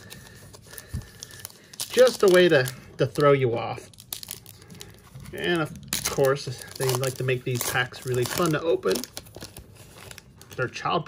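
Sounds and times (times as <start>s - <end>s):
card pack tearing open: 0.0s - 10.8s
plastic wrapper crinkling: 0.0s - 11.0s.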